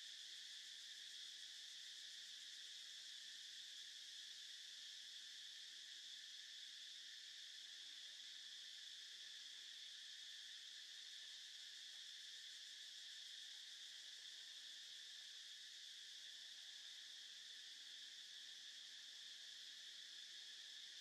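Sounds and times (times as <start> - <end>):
insect chorus drone: 0.0 - 21.0.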